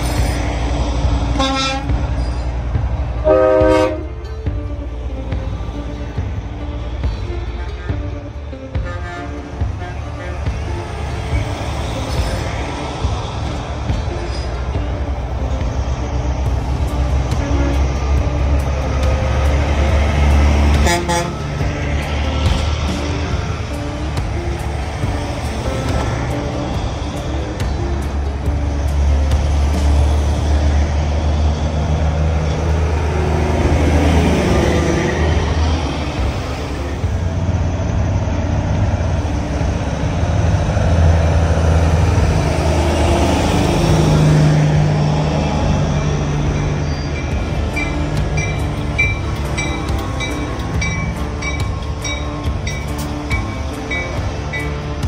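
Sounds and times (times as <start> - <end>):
diesel truck engines rumbling: 0.0 - 55.0.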